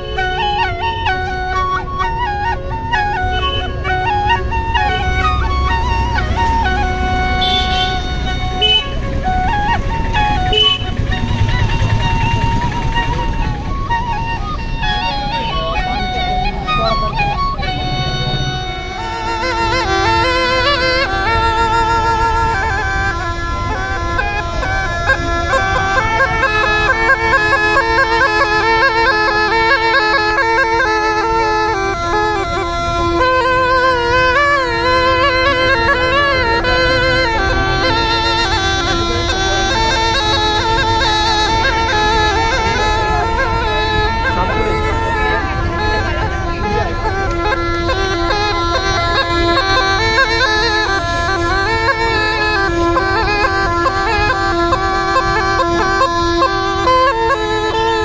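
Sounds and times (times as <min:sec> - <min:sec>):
double flute melody: 0:00.0 - 0:58.0
reedy gourd pipe melody: 0:00.0 - 0:58.0.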